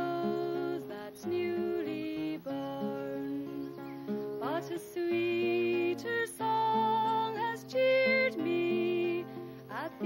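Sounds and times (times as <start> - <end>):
nylon-string guitar: 0.0 - 10.0
woman singing: 0.0 - 10.0.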